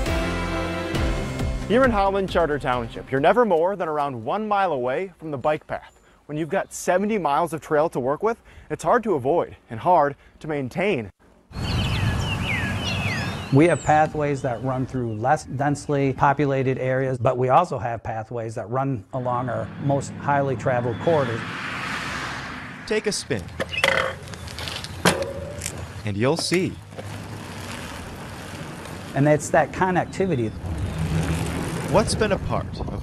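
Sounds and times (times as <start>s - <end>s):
birds chirping: 5.1s - 7.7s, 11.5s - 16.3s, 19.1s - 27.8s, 28.4s - 31.7s
outdoor background rush: 19.0s - 33.0s.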